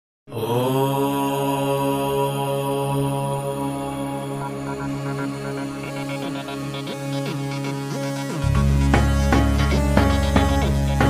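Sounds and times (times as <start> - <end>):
deep voice chanting om: 0.3 - 6.9.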